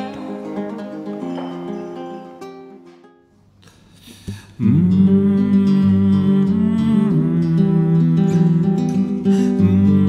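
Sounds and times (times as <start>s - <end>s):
nylon-string guitar playing: 0.0s - 3.4s, 4.6s - 10.0s.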